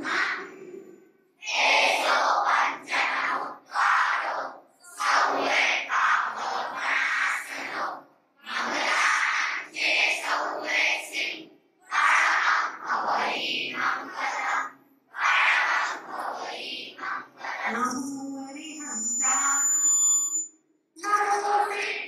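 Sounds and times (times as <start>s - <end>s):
voices chanting into a microphone: 0.0s - 19.6s.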